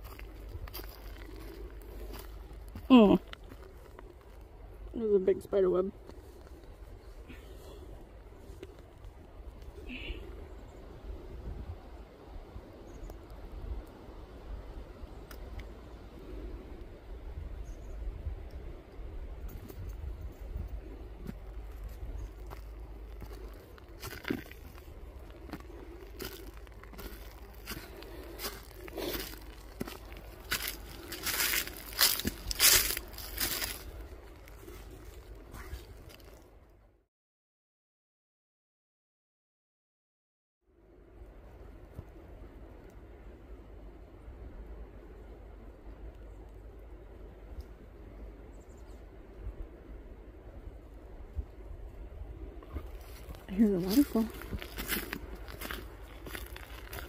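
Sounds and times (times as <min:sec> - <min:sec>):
leaves and twigs crunching: 0:00.0 - 0:04.8, 0:21.2 - 0:36.5, 0:52.6 - 0:57.0
footsteps on forest trail: 0:00.0 - 0:04.9, 0:19.5 - 0:36.5, 0:52.6 - 0:57.0.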